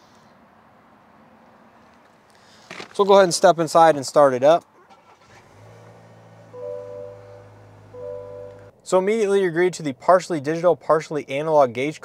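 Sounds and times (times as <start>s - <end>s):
low steady hum: 4.8s - 9.0s
car electronic chime: 6.1s - 8.7s.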